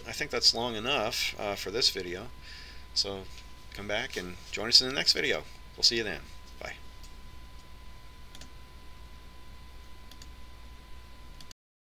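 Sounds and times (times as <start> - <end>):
low electrical hum: 0.0 - 11.6
computer mouse clicks: 8.3 - 8.6, 10.1 - 10.3.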